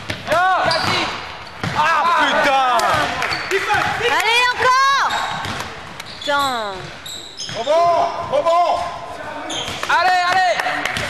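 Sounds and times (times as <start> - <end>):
shoes squeaking on a gym floor: 0.6 - 3.6, 4.9 - 10.1.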